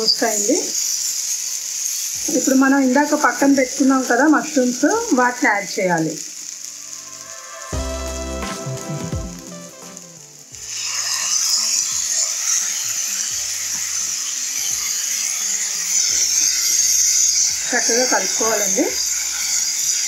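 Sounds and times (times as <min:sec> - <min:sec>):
mushrooms sizzling in hot oil: 0:00.0 - 0:20.0
soft background music: 0:07.6 - 0:10.7.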